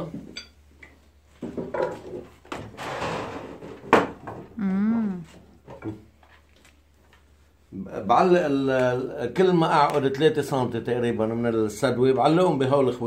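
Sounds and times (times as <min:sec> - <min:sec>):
person humming mm: 0:04.6 - 0:05.4.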